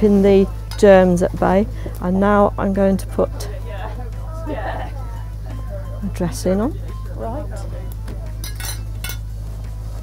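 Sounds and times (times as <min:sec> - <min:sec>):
steady low hum: 0:00.0 - 0:10.0
light metallic clinks: 0:08.4 - 0:09.3.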